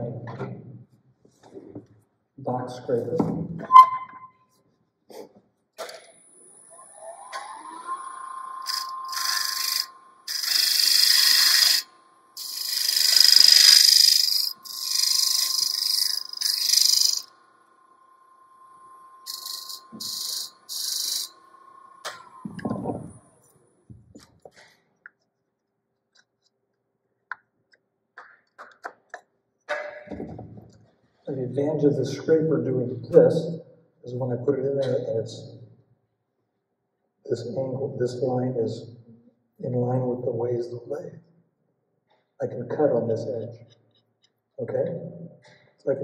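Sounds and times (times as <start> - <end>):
wood lathe motor whining: 6.0 - 23.5
turning tool scraping wood: 8.6 - 17.3, 19.2 - 21.4.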